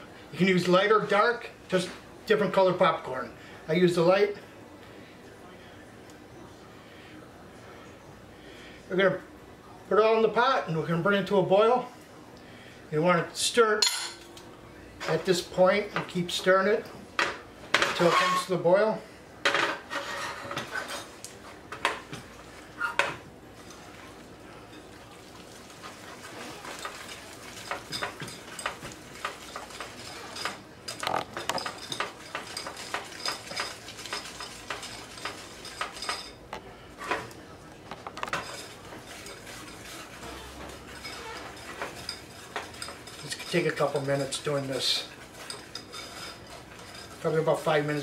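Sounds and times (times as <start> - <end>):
whisk scraping a metal saucepan: 17.8 - 18.6, 19.8 - 21.1, 25.8 - 36.4, 38.3 - 48.0
whisk clinks: 26.7 - 36.4, 40.8 - 47.4.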